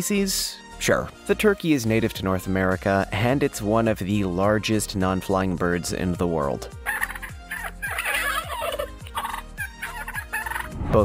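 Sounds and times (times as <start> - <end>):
turkeys gobbling: 6.8 - 10.7.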